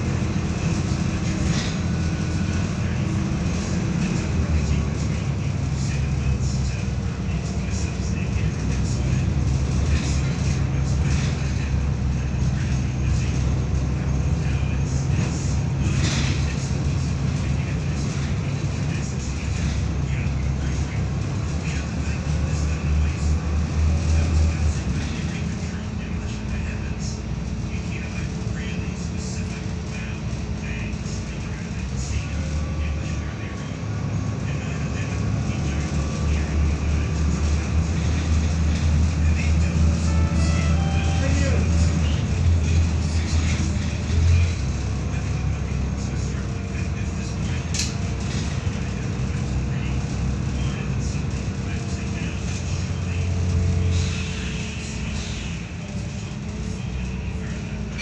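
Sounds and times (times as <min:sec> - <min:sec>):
bus body rattling: 0:00.0 - 0:58.0
bus diesel engine drone: 0:00.0 - 0:58.0.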